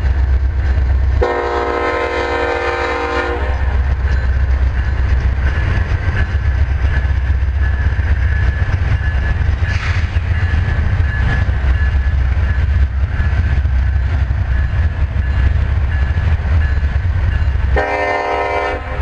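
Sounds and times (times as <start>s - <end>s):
freight train rumbling past: 0.0s - 19.0s
locomotive horn blast: 1.2s - 3.8s, 17.8s - 19.0s.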